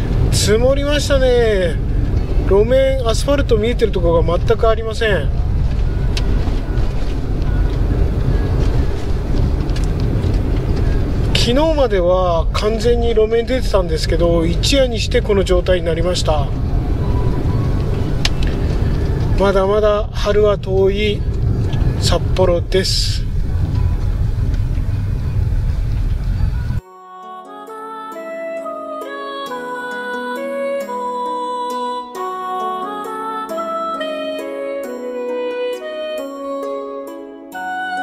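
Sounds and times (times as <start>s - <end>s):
car tyres and engine rumbling: 0.0s - 26.8s.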